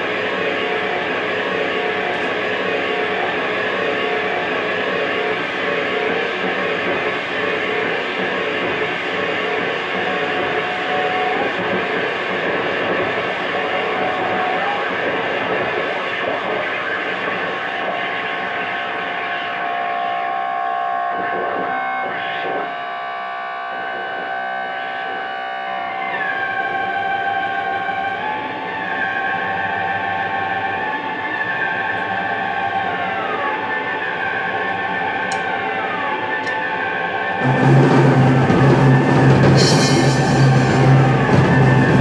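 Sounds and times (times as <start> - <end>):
high ringing metallic tones: 39.6 - 42.0.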